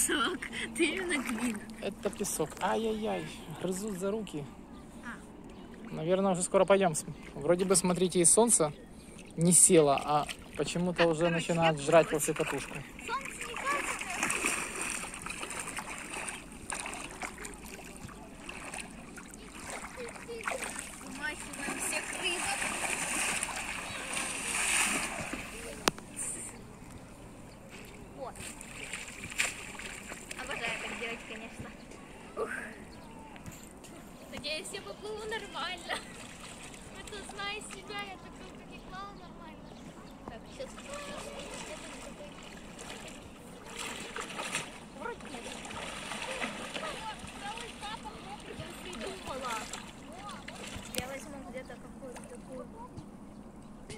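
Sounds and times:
distant voices: 0.0 - 53.9
person splashing in water: 13.2 - 25.8, 28.5 - 31.1, 40.8 - 51.0.

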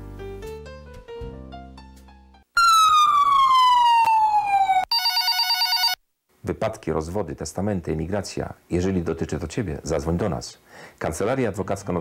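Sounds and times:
siren wailing and warbling: 2.6 - 5.0.

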